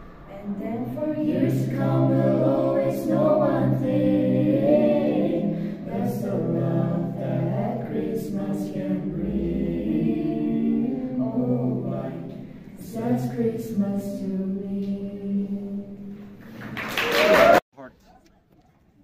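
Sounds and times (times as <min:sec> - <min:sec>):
group singing unaccompanied: 0:00.3 - 0:16.4.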